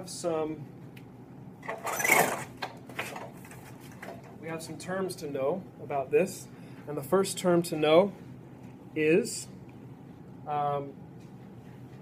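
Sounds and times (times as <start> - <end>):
projection screen roller whirring: 1.6 - 4.2.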